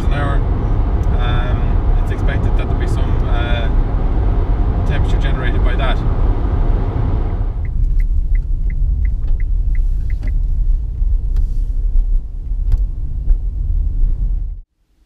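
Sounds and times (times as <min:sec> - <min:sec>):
road and tyre rumble: 0:00.0 - 0:15.0.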